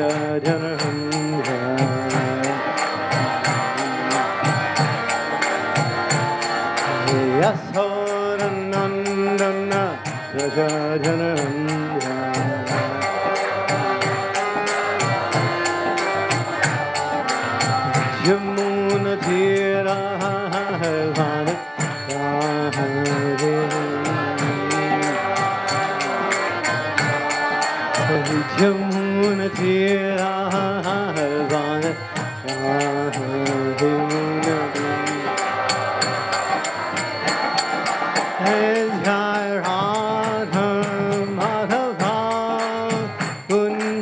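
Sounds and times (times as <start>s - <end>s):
man singing a chant: 0.0s - 4.8s, 6.8s - 15.6s, 18.0s - 26.4s, 28.0s - 36.2s, 38.3s - 44.0s
steady percussion beat: 0.0s - 44.0s.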